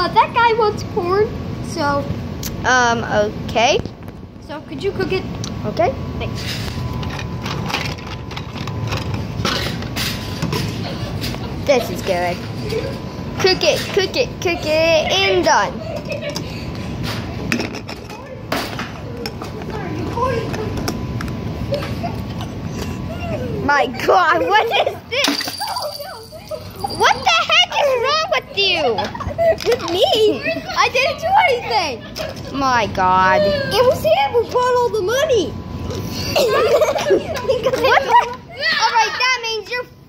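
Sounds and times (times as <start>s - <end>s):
steady low hum: 0.0s - 40.0s
child's high-pitched voice: 13.4s - 16.2s, 23.1s - 32.1s, 33.4s - 35.6s, 36.3s - 39.9s.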